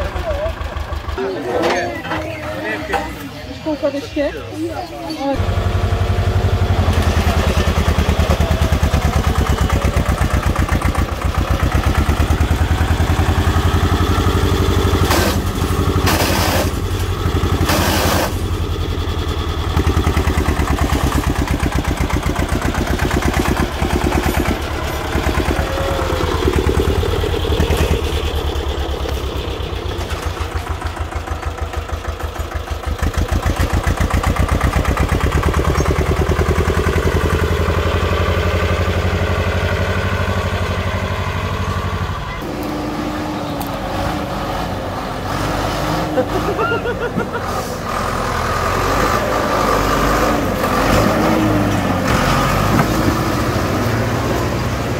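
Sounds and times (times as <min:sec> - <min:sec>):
tractor diesel engine under load: 0:00.0 - 0:54.9.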